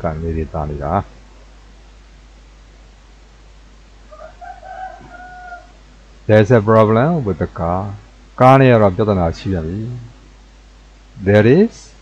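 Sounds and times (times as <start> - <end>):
steady low hiss: 0.0 - 12.0
rooster crowing: 4.1 - 5.9.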